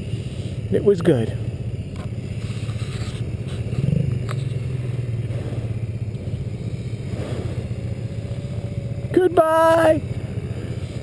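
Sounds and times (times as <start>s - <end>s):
atv engine idling: 0.0s - 11.0s.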